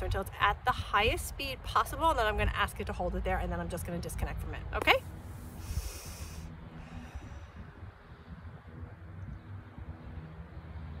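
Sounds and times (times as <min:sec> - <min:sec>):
wind rumble on microphone: 0:00.0 - 0:11.0
person breathing out through nose: 0:05.3 - 0:07.9.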